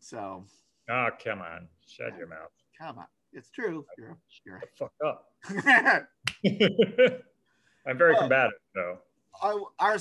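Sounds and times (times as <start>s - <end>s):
men talking: 0.0s - 6.2s, 7.8s - 10.0s
men laughing: 5.4s - 7.3s.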